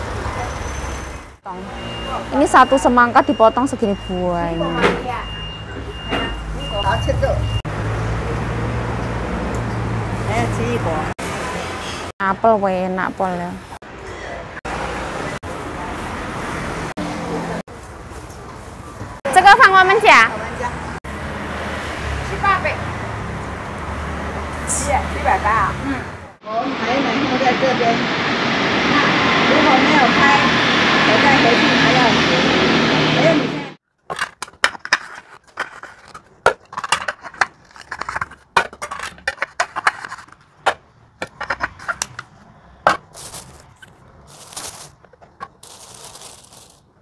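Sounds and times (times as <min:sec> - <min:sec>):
street traffic rumble and hiss: 0:00.0 - 0:33.8, 0:36.2 - 0:47.0
plastic plates clacking: 0:34.0 - 0:46.8.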